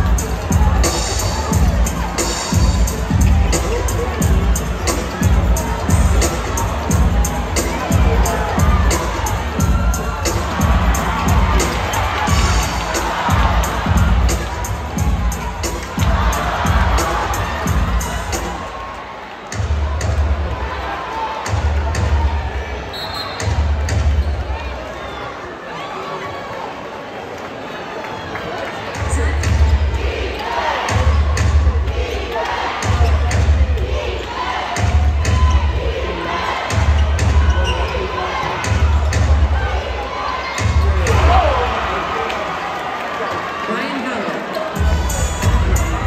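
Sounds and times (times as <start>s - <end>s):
arena crowd chatter: 0.0s - 46.0s.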